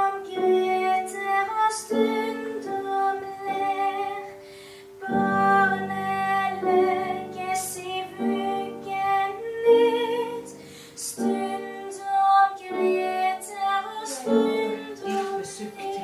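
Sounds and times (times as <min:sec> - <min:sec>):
girl singing a lullaby: 0:00.0 - 0:16.0.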